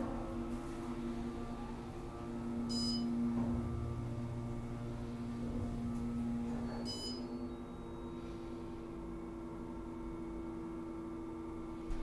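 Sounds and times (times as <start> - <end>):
elevator motor hum: 0.0 - 12.0.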